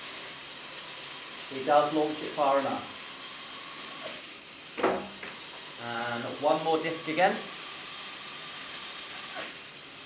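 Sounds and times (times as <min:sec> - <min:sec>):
flywheel launcher whirring: 0:00.0 - 0:10.0.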